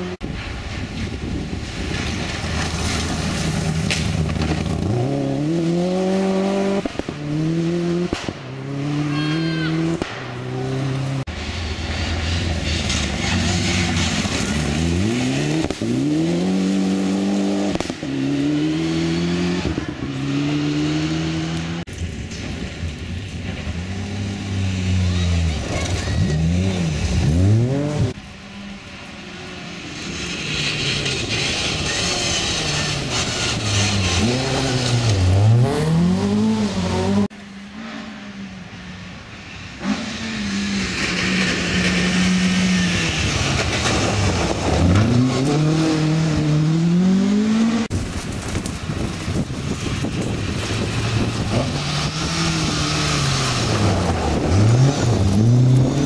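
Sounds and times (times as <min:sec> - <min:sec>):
rally car engines accelerating: 0:01.8 - 0:22.6, 0:23.4 - 0:56.0.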